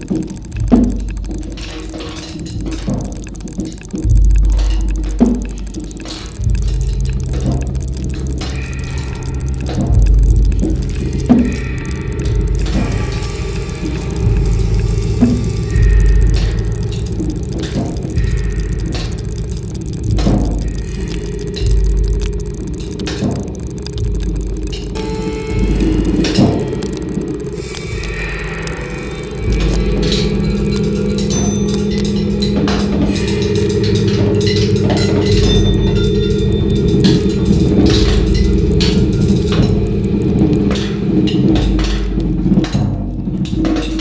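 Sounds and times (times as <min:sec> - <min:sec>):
deep pulsing swells: 0:00.0 - 0:44.0.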